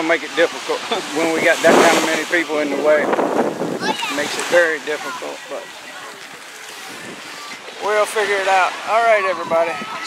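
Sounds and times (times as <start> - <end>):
man talking: 0.0 - 3.2, 4.0 - 5.7
gentle surf washing: 0.0 - 10.0
wind noise on microphone: 1.0 - 5.1, 6.8 - 7.6, 9.0 - 10.0.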